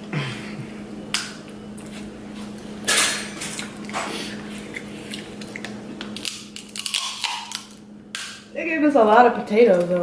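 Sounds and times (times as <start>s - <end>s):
chewing mussels: 3.5s - 7.8s.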